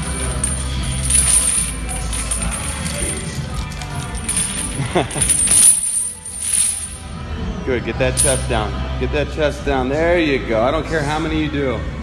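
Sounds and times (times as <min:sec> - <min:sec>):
steel chains clinking: 0:00.0 - 0:07.1, 0:08.2 - 0:08.6
background music: 0:00.0 - 0:12.0.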